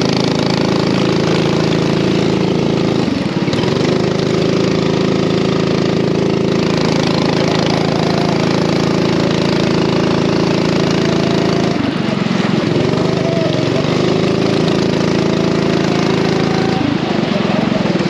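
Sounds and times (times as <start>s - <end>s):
kart engine buzzing at high revs: 0.0s - 18.0s.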